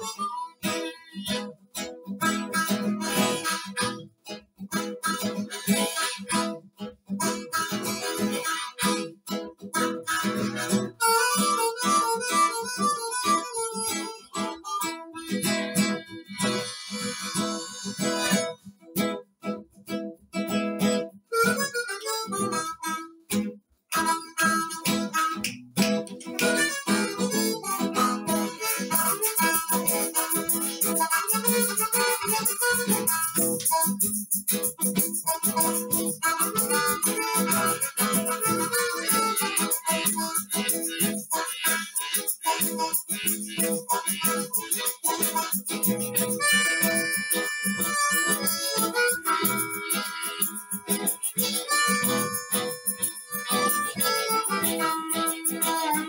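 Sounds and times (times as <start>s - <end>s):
strummed acoustic guitar: 0.0s - 56.0s
harmonicas playing: 24.0s - 56.0s.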